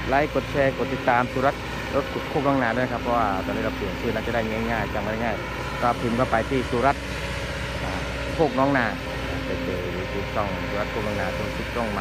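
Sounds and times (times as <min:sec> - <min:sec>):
excavator diesel engine running: 0:00.0 - 0:12.0.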